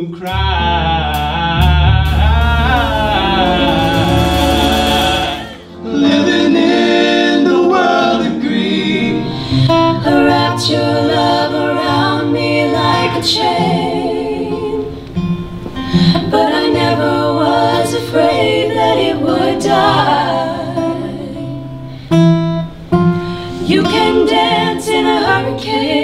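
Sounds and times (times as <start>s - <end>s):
acoustic guitar: 0.0s - 26.0s
women singing in harmony: 2.4s - 15.1s, 15.9s - 21.8s, 23.5s - 26.0s.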